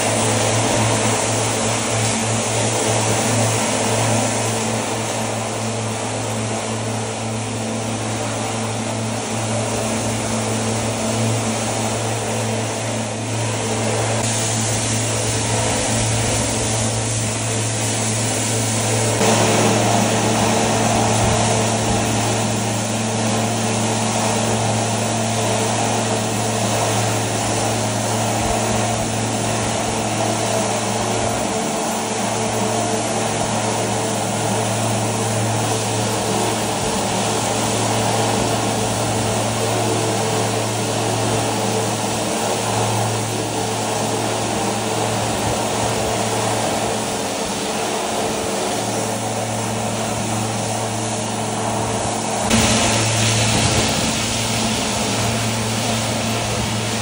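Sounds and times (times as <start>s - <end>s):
vacuum truck pump and engine: 0.0s - 57.0s
water spray hissing: 14.2s - 32.1s, 51.6s - 57.0s
hose sucking: 48.4s - 57.0s.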